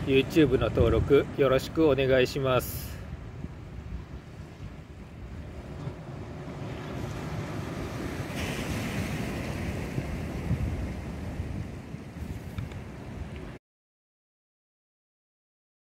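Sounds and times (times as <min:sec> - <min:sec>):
wind buffeting microphone: 0:00.0 - 0:13.6
small waves washing on stony beach: 0:02.6 - 0:13.6.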